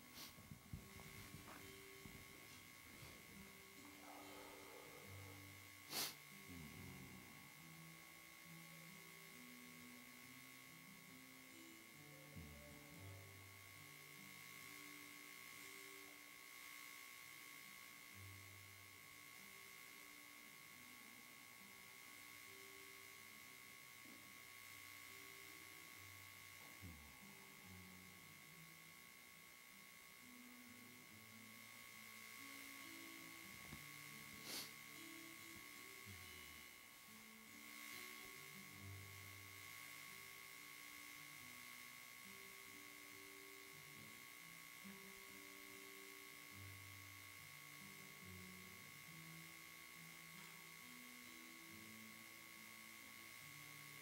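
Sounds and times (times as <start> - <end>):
slow keyboard music: 0.0 - 16.4
high electrical whine: 0.0 - 54.0.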